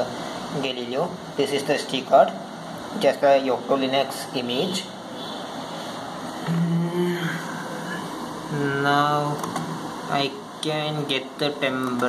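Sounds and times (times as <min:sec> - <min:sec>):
room hiss: 0:00.0 - 0:12.0
man saying mm: 0:06.4 - 0:09.2.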